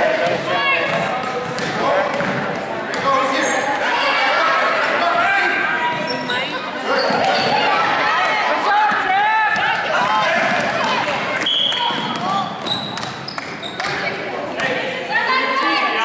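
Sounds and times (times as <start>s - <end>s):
voices echoing in gym: 0.0s - 16.0s
basketball bouncing on wooden floor: 0.2s - 3.0s.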